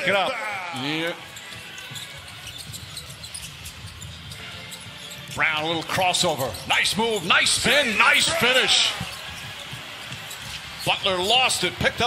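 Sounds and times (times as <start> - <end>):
basketball dribbled on hardwood: 8.7 - 12.0.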